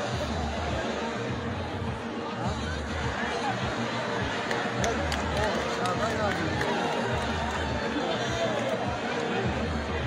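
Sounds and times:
large crowd talking: 0:00.0 - 0:10.0.

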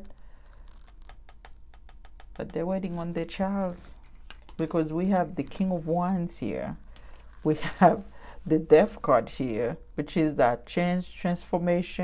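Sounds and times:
cards clicking and tapping: 0:00.8 - 0:02.5.

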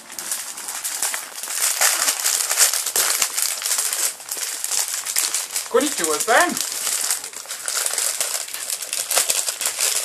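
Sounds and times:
wrapping paper crinkling: 0:00.0 - 0:10.0.

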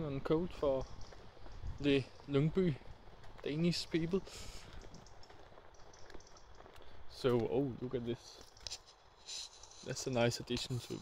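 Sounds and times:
soft irregular ticks: 0:00.3 - 0:11.0
faint footsteps: 0:00.5 - 0:11.0.

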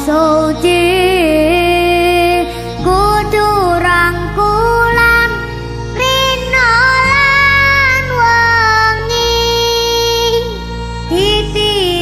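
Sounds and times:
instrumental backing: 0:00.0 - 0:12.0
woman singing devotional song: 0:00.0 - 0:12.0.

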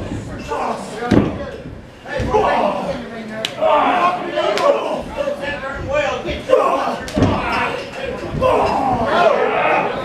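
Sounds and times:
people's voices in large room: 0:00.0 - 0:10.0.

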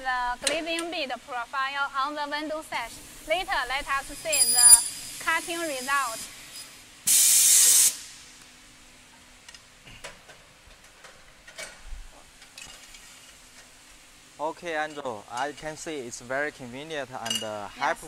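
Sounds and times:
compressed air hiss: 0:02.8 - 0:08.4.

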